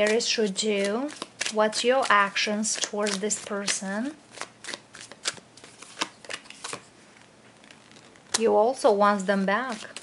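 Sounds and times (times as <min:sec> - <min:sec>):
cards being shuffled: 0:00.0 - 0:08.6, 0:09.6 - 0:10.0.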